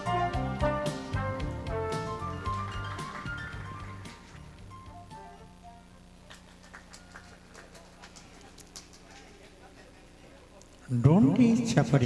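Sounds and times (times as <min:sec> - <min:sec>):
sound system hum: 0:00.0 - 0:12.0
faint hand clapping: 0:06.2 - 0:09.3.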